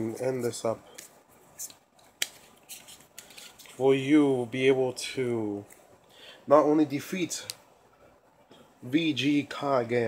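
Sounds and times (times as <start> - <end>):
trading cards rustling: 0.1 - 3.9.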